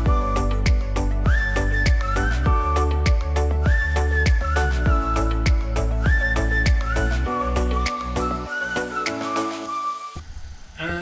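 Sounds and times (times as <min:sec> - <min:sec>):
whistle-like lead melody: 0:00.0 - 0:10.3.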